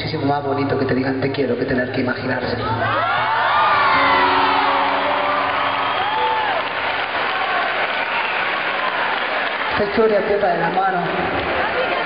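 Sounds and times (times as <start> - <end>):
audience applauding and cheering: 2.7 - 12.0
held musical notes: 3.9 - 7.9.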